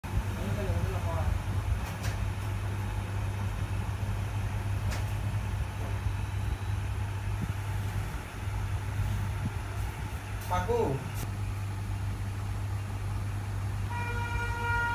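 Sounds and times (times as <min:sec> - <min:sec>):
low mechanical hum: 0:00.0 - 0:14.9.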